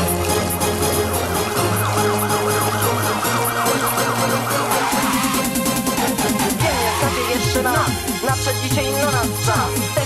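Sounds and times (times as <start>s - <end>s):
techno beat and bass line: 0.0s - 10.0s
siren-like synth wail: 0.2s - 7.9s.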